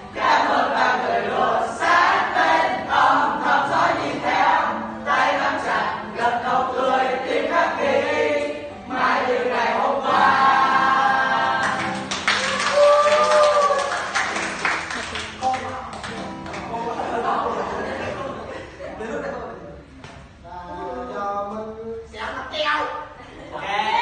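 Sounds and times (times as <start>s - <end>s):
children singing together: 0.0s - 12.1s.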